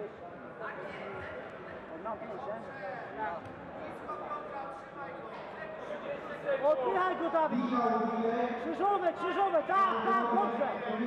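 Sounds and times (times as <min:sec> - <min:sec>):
crowd voices in hall: 0:00.0 - 0:11.0.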